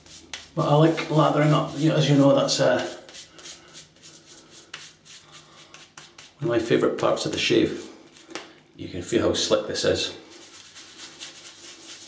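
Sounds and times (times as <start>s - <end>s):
fingers rubbing shaving lather: 0.0s - 6.7s, 10.4s - 12.0s.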